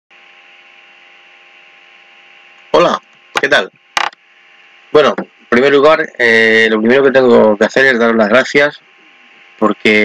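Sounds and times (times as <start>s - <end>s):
electrical hum and hiss: 0.1s - 10.0s
faint constant tones: 0.2s - 10.0s.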